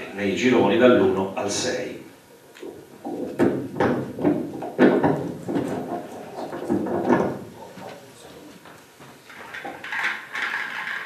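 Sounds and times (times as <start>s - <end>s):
objects knocking and clattering: 2.6s - 8.0s, 8.7s - 11.0s.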